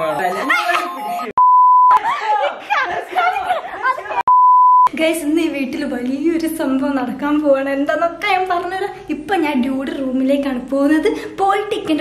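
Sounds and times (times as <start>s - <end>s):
censor bleep tone: 0.0s - 1.9s, 4.3s - 4.9s.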